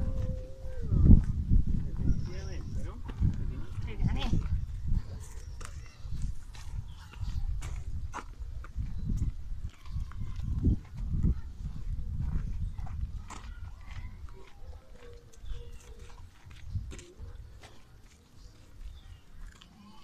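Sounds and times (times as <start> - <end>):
wind noise on microphone: 0.0 - 17.9
footsteps on dirt path: 0.0 - 19.6
faint voice-like sounds: 9.8 - 20.0.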